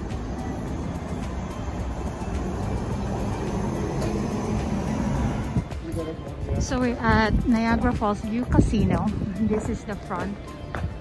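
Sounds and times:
bus engine rumble: 0:00.0 - 0:10.5.

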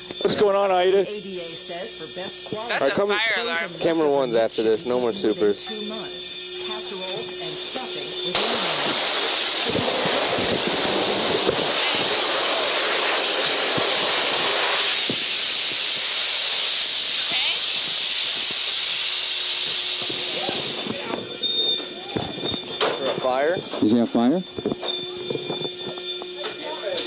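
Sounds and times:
fire alarm tones: 0:00.0 - 0:27.0
gas discharge hissing: 0:07.0 - 0:21.7.

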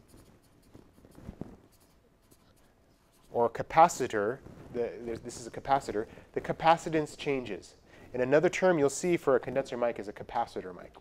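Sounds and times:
marker scratching on paper: 0:00.0 - 0:04.1.

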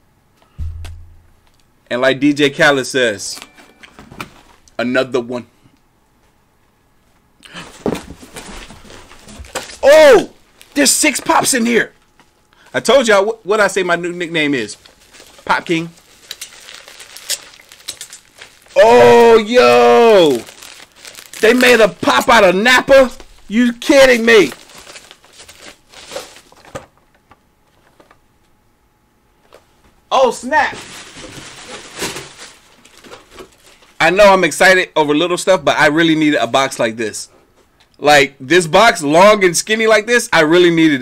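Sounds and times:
packaging clicks and rustles: 0:07.6 - 0:09.8, 0:14.7 - 0:18.8, 0:20.1 - 0:22.4, 0:23.0 - 0:28.2, 0:30.7 - 0:34.0
man exclaiming: 0:09.8 - 0:11.5, 0:18.8 - 0:20.5
cardboard box rustling: 0:24.4 - 0:26.8.

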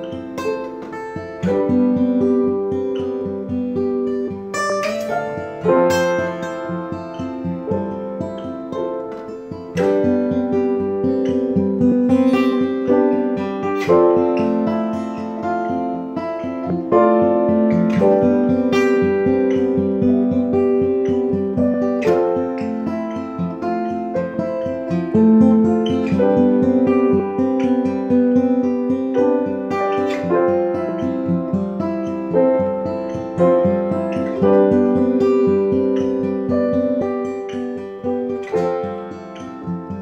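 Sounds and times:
acoustic guitar picking and strumming: 0:00.0 - 0:40.0
piano: 0:00.0 - 0:40.0.

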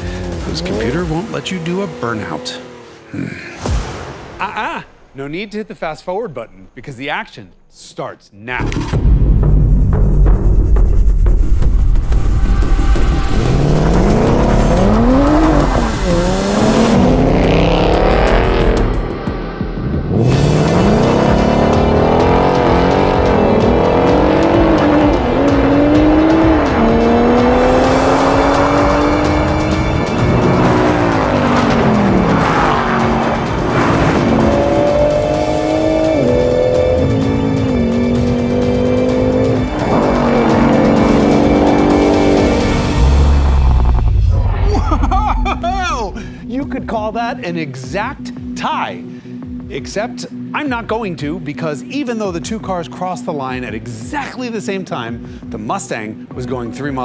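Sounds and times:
car engines accelerating: 0:00.0 - 0:03.6, 0:12.4 - 0:46.5.

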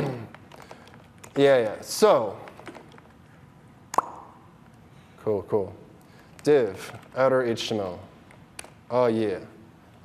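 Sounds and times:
sharp pop with falling tone: 0:04.0 - 0:04.4.

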